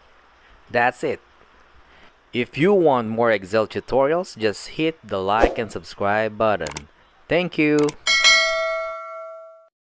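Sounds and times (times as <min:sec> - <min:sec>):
notification bell ding: 0:08.1 - 0:09.7.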